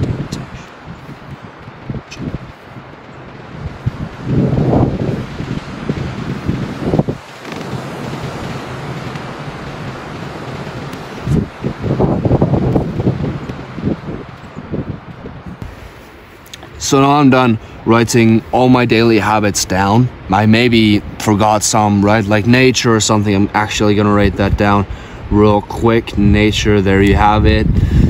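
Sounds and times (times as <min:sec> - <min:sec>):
wind buffeting microphone: 0:00.0 - 0:28.0.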